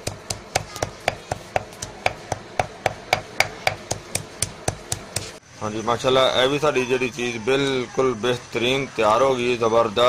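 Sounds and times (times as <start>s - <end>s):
pestle pounding in mortar: 0.0s - 5.4s.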